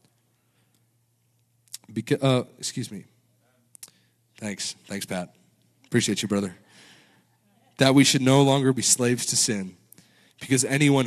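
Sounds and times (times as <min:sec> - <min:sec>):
low steady hum: 0:00.0 - 0:11.0
man speaking into a microphone: 0:01.8 - 0:03.0, 0:04.4 - 0:06.6, 0:07.8 - 0:11.0.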